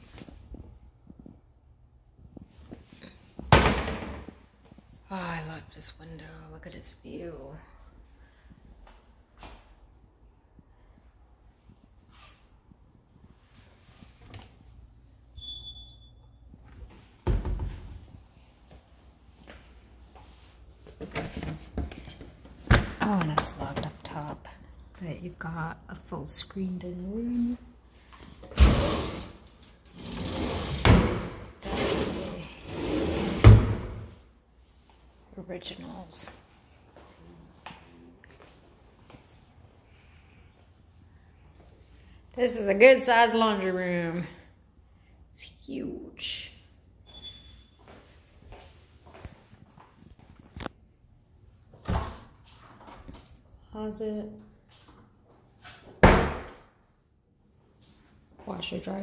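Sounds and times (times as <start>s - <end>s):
closet door banging shut: 3.5s - 4.3s, 56.0s - 56.6s.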